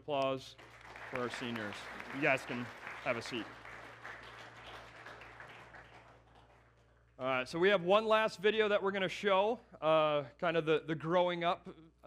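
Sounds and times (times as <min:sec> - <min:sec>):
faint applause: 0:00.6 - 0:07.0.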